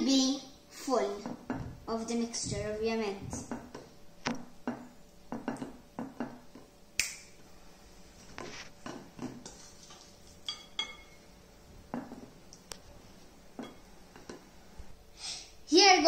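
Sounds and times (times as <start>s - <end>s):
spoon tapping on glass bowl: 10.5s - 11.2s.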